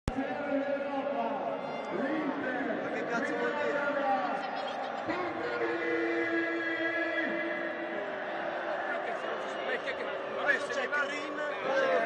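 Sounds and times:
crowd shouting and chanting: 0.1 - 12.0.

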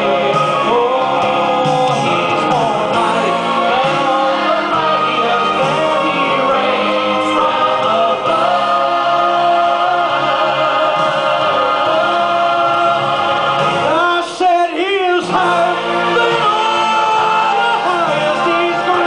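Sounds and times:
church choir singing gospel: 0.0 - 19.0
male soloist singing: 0.0 - 19.0.

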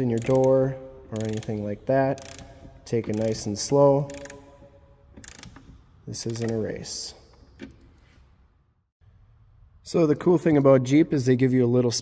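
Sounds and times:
hand ratchet clicking: 0.0 - 6.7.

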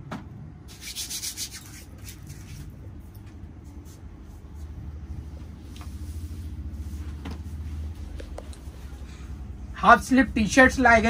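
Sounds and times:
hands rubbing together: 0.7 - 2.8.

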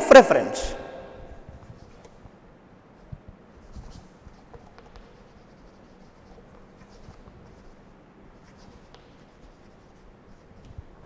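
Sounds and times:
chalk scratching on blackboard: 1.5 - 2.2, 3.5 - 11.0
chalk tap: 3.3 - 7.8, 8.4 - 11.0.

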